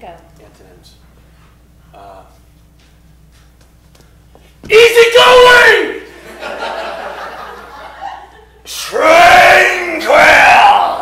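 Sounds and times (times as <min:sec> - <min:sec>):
person shouting lines: 0:04.6 - 0:06.1, 0:08.7 - 0:11.0
man shouting loudly: 0:04.7 - 0:06.1, 0:08.7 - 0:11.0
audience laughing: 0:06.1 - 0:08.6.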